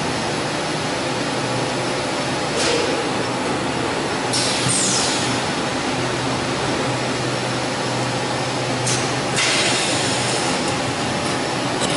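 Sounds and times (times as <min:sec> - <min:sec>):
machine hiss: 0:04.3 - 0:05.4, 0:09.4 - 0:10.5.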